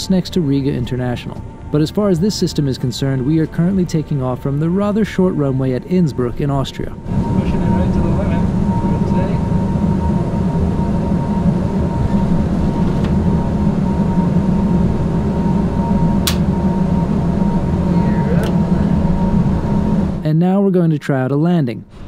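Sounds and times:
thin constant tone: 0.0 - 20.2
simulated engine rumble: 0.0 - 20.3.

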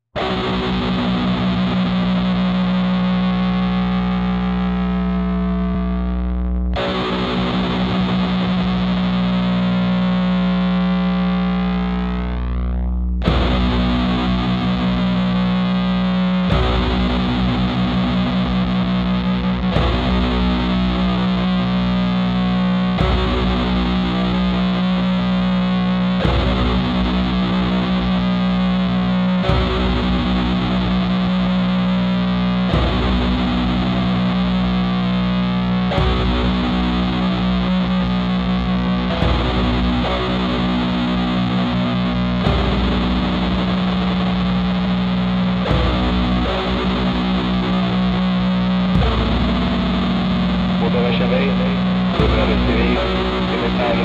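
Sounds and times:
metal band with distorted guitars: 0.0 - 54.0
steady low drone: 0.2 - 54.0.

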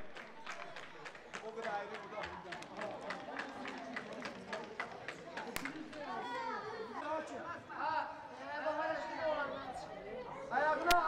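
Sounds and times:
quick even taps: 5.6 - 5.9
sharp crack: 5.6 - 5.9.

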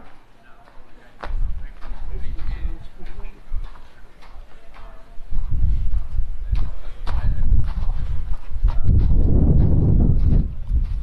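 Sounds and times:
footsteps on snow: 0.0 - 11.0.

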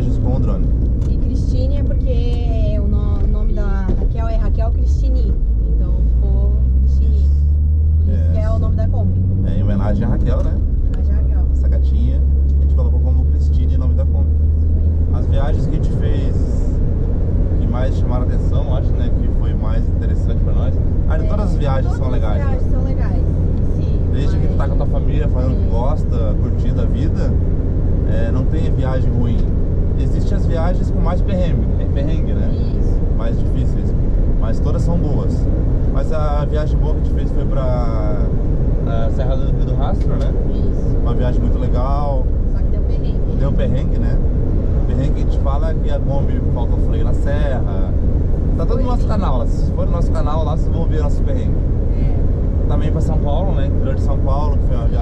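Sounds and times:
low rumble: 0.0 - 55.0
road and engine rumble: 0.0 - 55.0
indistinct adult and child voices: 20.4 - 27.1.

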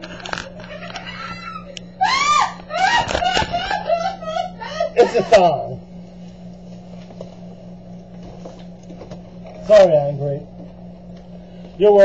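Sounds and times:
person shrieking: 0.9 - 5.2.

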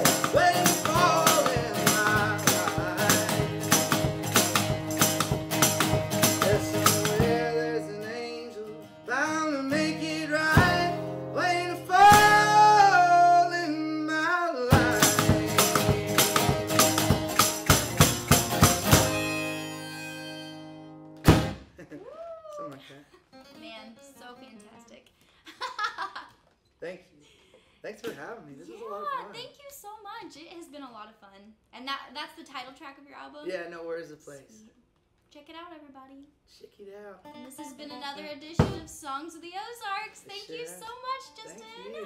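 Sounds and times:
foot percussion: 0.0 - 7.5, 14.7 - 20.4, 21.1 - 21.7, 38.6 - 39.0
harmonica melody: 0.0 - 13.9, 14.8 - 21.2
acoustic guitar strumming: 0.0 - 21.8, 37.2 - 39.1.

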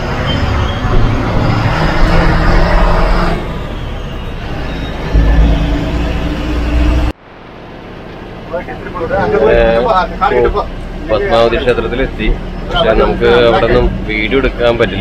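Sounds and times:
bus engine and road noise: 0.0 - 15.0
low rumble: 4.5 - 7.8.

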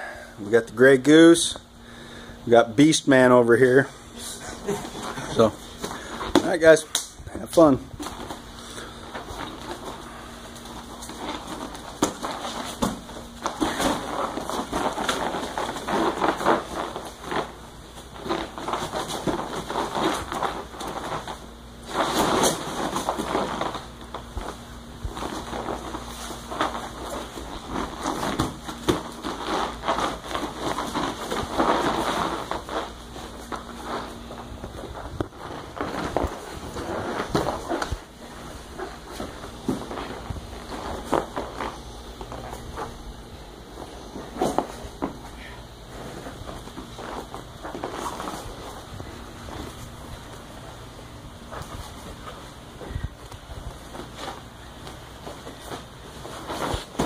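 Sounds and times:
cloth rustling and scuffing: 7.6 - 57.0
bodies thumping on mats: 8.0 - 57.0.

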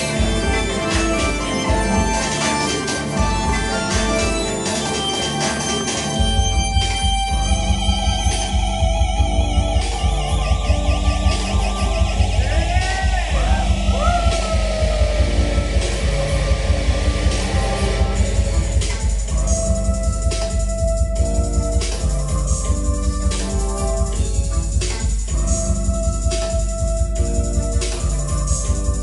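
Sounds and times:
fast kick and bass: 0.0 - 29.0
pitch-bent synth notes: 0.0 - 29.0
synthesizer keyboard lines: 0.0 - 29.0.

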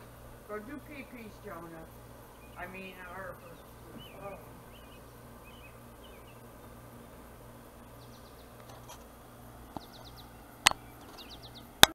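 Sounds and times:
songbirds chirping: 0.0 - 11.9.

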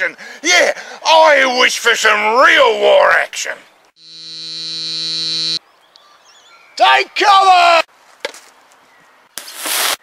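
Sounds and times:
electronic buzzing tone: 4.0 - 5.6.

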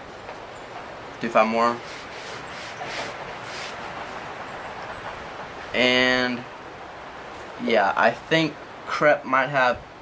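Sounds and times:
brush scrubbing a sneaker: 1.8 - 3.8.

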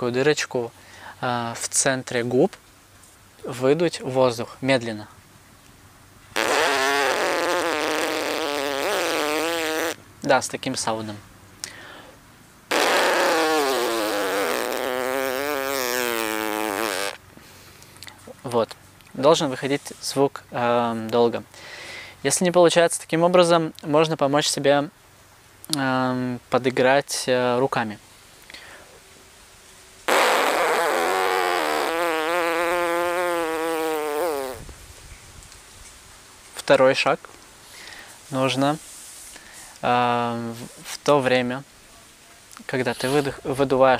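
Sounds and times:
lips buzzing: 6.4 - 10.0, 12.7 - 17.2, 30.1 - 34.7.

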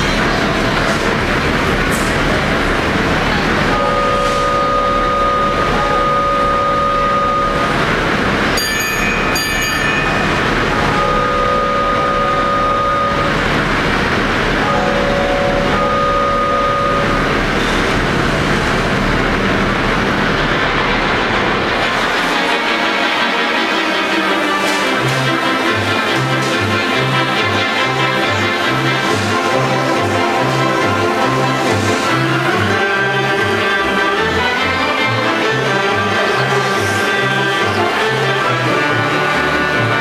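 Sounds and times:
organ hissing chug: 0.0 - 40.0
organ train-whistle chords: 0.0 - 40.0
pipe organ music: 1.2 - 8.6, 9.2 - 40.0
bright bell-like strikes: 8.6 - 10.6.

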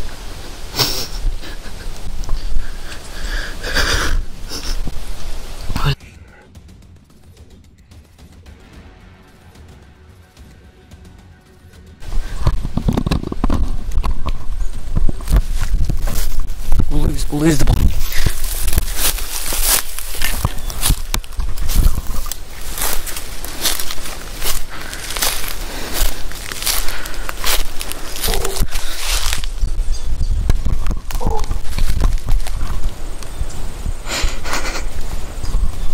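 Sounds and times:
low microphone rumble: 1.2 - 35.9
footsteps through dry leaves: 13.6 - 30.0, 31.0 - 33.0.

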